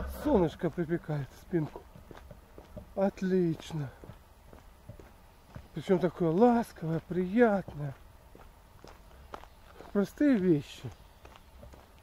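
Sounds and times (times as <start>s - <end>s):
faint footsteps walking: 0.0s - 12.0s.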